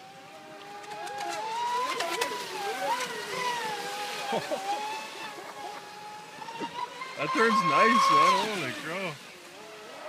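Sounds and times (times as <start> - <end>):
electric speedboat motor whining: 0.0 - 10.0.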